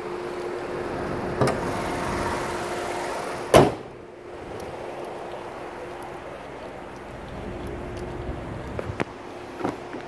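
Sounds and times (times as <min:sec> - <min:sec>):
parking garage hum: 0:00.0 - 0:10.0
loud thump: 0:03.5 - 0:04.0.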